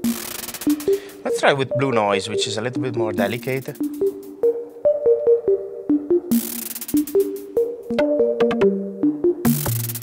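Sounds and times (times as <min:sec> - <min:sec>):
shaker-like noise burst: 0:00.0 - 0:01.0
synthesizer sequenced notes: 0:00.0 - 0:10.0.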